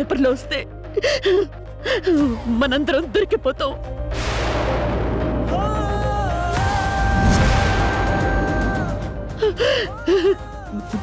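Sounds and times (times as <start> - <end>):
dramatic background music: 0.0 - 11.0
woman crying: 0.8 - 3.8, 9.2 - 11.0
gasping sobs: 0.9 - 2.6, 9.2 - 11.0.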